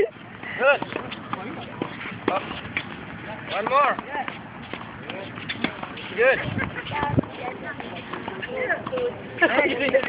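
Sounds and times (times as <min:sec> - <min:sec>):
rackets hitting tennis balls: 0:00.3 - 0:10.0
tennis balls bouncing on court: 0:00.3 - 0:10.0.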